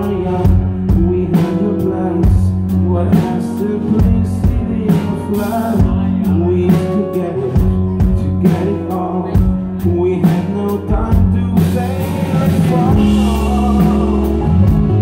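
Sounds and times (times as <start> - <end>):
bass: 0.0 - 15.0
drum kit: 0.0 - 15.0
man singing: 0.0 - 15.0.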